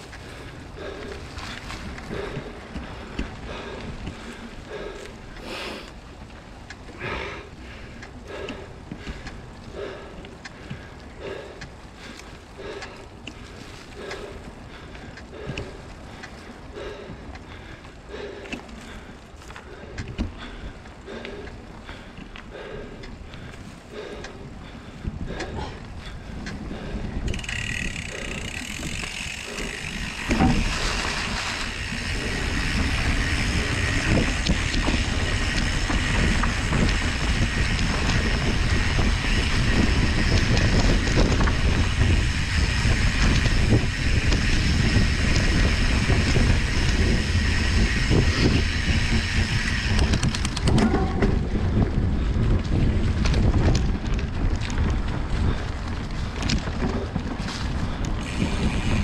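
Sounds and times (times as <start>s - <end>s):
bike tyre rumble on dirt: 0.0s - 59.0s
wind buffeting microphone: 0.0s - 59.0s
high whirring: 58.2s - 59.0s.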